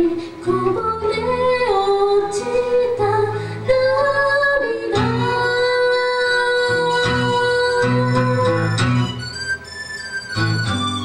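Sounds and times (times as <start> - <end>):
woman singing long notes: 0.0 - 8.8
acoustic guitar: 0.0 - 11.0.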